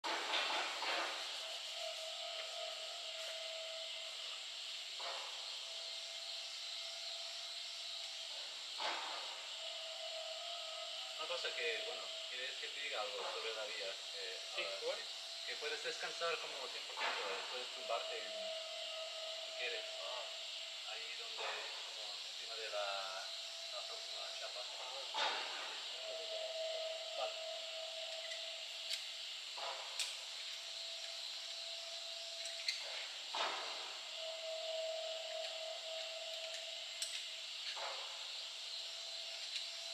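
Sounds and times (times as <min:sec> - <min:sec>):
outdoor background hiss: 0:00.0 - 0:39.9.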